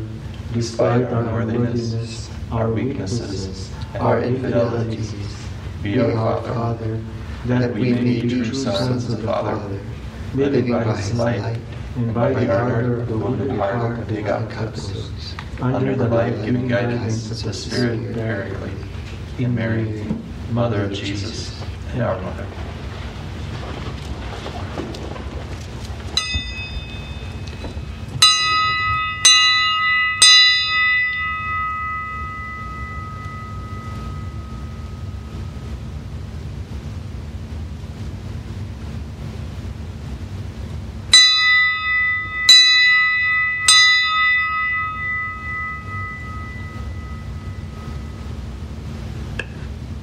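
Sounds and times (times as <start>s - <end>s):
bell ringing: 26.2s - 35.9s, 41.1s - 48.9s.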